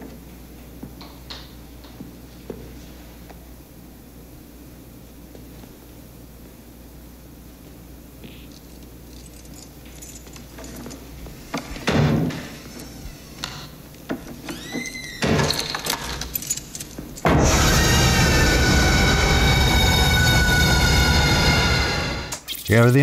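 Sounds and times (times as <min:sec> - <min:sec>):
loud shrieking high chord: 0:17.2 - 0:22.9.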